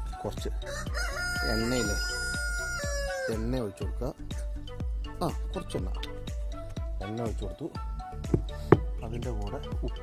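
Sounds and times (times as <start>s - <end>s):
background music with steady beat: 0.0s - 10.0s
rooster crowing: 0.6s - 3.4s.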